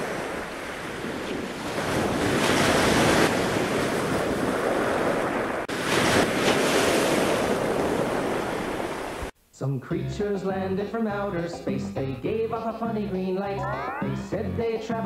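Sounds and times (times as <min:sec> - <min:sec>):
wind buffeting microphone: 0:00.0 - 0:09.1
ocean surf rushing: 0:00.0 - 0:09.3.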